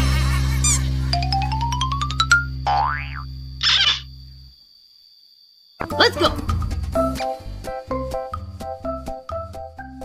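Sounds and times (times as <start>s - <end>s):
springy cartoon boing: 1.8s - 4.0s.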